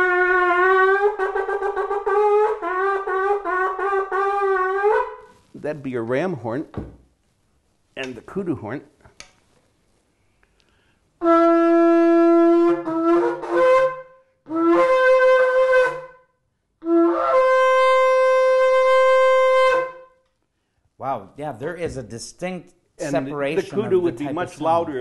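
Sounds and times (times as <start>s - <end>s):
shofar blasts: 0.0s - 5.4s, 11.2s - 20.2s.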